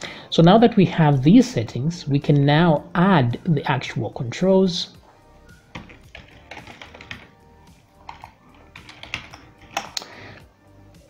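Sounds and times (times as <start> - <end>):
keyboard typing: 5.6 - 10.1.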